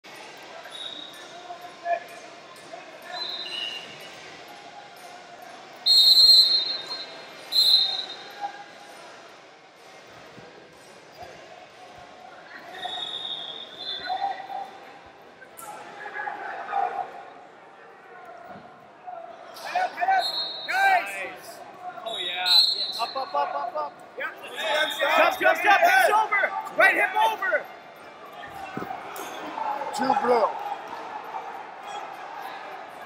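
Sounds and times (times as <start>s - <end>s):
murmur of large gym hall: 0.0s - 33.0s
faint whistles: 0.6s - 1.5s, 3.0s - 4.3s, 5.8s - 8.5s, 12.6s - 14.6s, 20.0s - 20.8s, 22.0s - 23.2s
referee's whistle blast: 5.8s - 8.3s, 24.6s - 25.6s.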